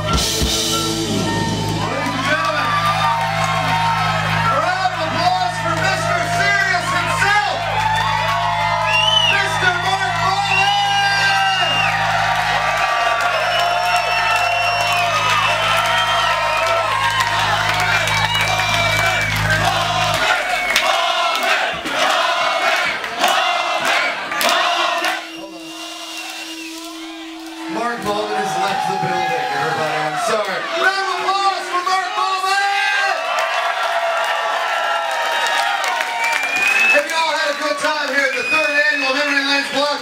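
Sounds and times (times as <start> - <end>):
rock band holding low note: 0.0 - 32.5
concert crowd cheering and yelling: 0.0 - 40.0
clapping: 12.4 - 21.6, 22.7 - 25.2, 33.3 - 39.4.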